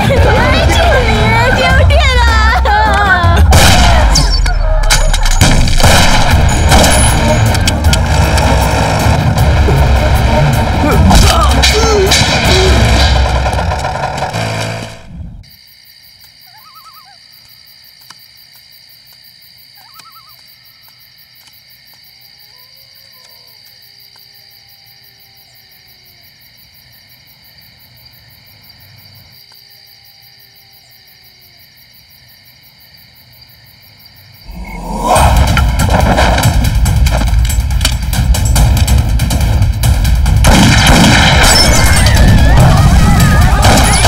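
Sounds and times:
loud soundtrack music: 0.0 - 15.2, 34.8 - 44.0
night insects chirring: 14.6 - 44.0
owl hoots: 16.5 - 17.2, 19.8 - 20.4.

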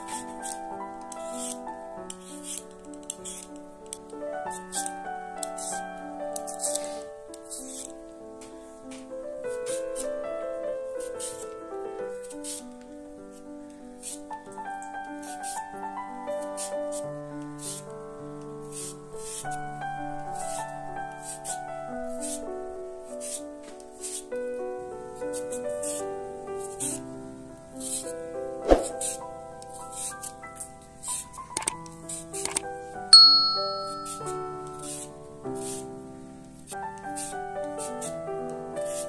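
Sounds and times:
instrumental background music: 28.2 - 36.0
sharp knock: 28.6 - 29.1.

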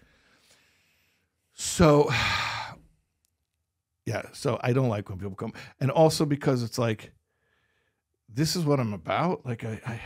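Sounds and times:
man sighing into microphone: 2.0 - 2.8.

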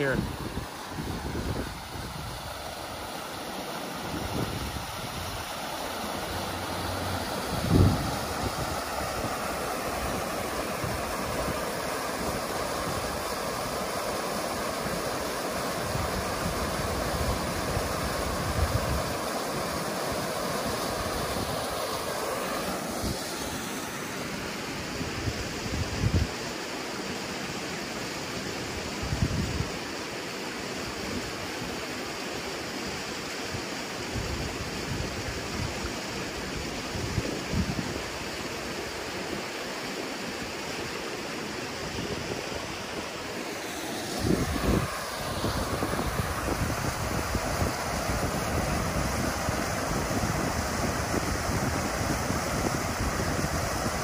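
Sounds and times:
wind gusts on microphone: 0.0 - 3.1, 4.0 - 13.9, 14.6 - 23.7, 24.7 - 26.4, 28.8 - 29.9, 33.5 - 38.9, 41.7 - 54.0
creek water rushing over rocks: 0.0 - 54.0.

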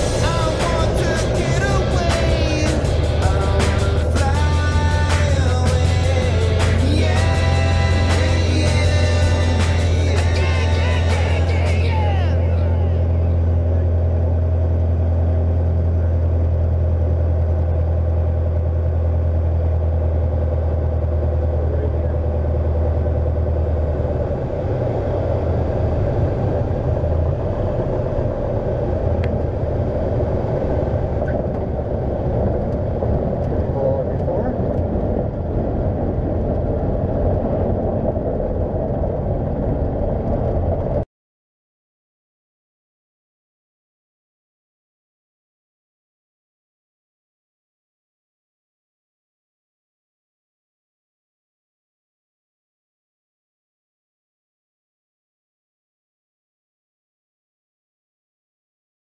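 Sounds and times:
music: 0.0 - 13.4
light aircraft engine droning: 0.0 - 41.0.

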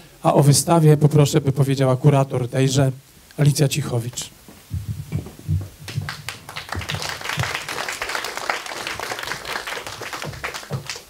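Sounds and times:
audience applauding: 5.8 - 11.0.

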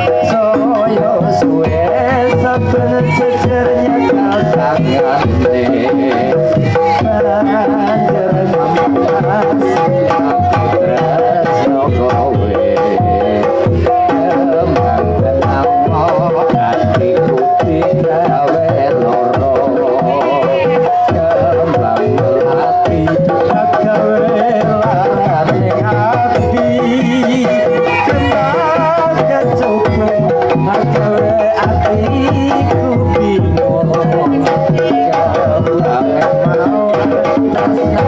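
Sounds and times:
hand-drum strokes: 0.0 - 38.0
ringing metallophone melody: 0.0 - 38.0
tuned percussion pattern: 0.0 - 38.0.

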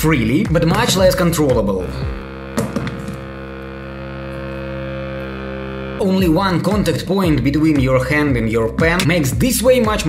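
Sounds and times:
sustained music chord: 0.0 - 8.4.

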